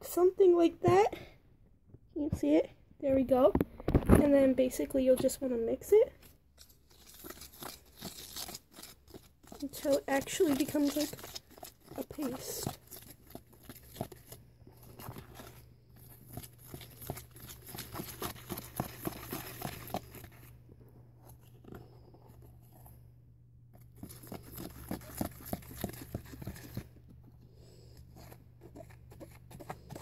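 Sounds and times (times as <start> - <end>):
low steady hum: 0.0 - 30.0
utensil scraping plastic container: 6.6 - 20.5.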